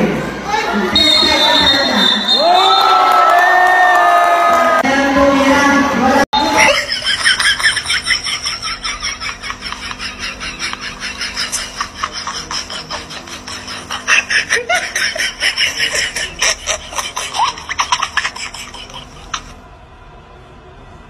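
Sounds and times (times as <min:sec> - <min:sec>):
high-pitched laughing: 0:06.4 - 0:19.6
faint steady hum: 0:06.4 - 0:21.0.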